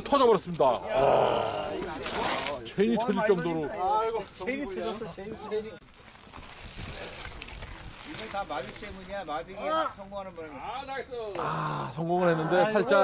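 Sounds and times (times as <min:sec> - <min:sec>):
men talking and calling out: 0:00.0 - 0:06.0, 0:07.8 - 0:13.0
rustling rattling noise: 0:03.3 - 0:09.6.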